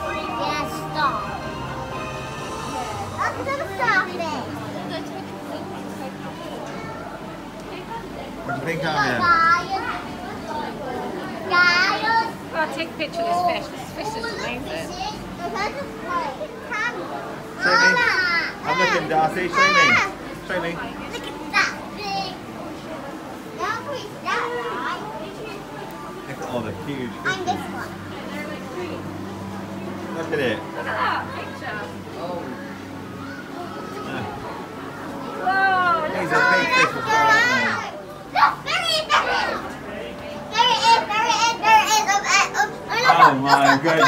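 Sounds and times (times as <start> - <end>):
young children's excited voices: 2.8 - 5.0, 8.6 - 10.7, 11.4 - 12.5, 14.1 - 20.2, 35.2 - 39.8, 40.5 - 44.0
children calling out: 32.9 - 39.8, 40.5 - 44.0.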